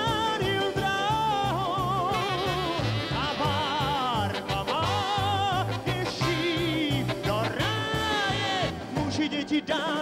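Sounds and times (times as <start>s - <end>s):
steady bass line: 0.0s - 9.4s
man singing with vibrato: 0.0s - 10.0s
pop band: 0.0s - 10.0s.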